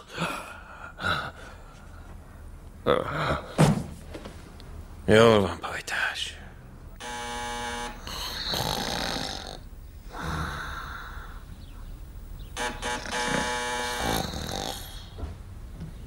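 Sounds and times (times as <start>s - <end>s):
person snoring: 8.0s - 11.4s, 13.3s - 15.2s.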